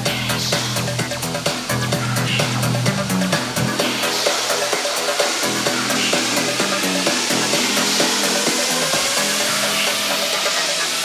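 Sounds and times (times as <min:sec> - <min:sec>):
fast hi-hat ticks: 0:00.0 - 0:11.0
rising synth sweep: 0:00.0 - 0:11.0.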